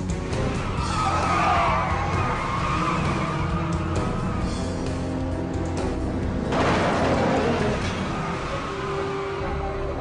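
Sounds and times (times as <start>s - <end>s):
action film music: 0.0s - 10.0s
car tyres squealing: 0.2s - 4.8s, 7.0s - 10.0s.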